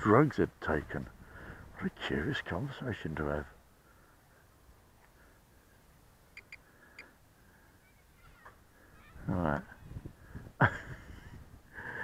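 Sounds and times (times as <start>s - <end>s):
short high bird chirps: 6.4s - 7.1s.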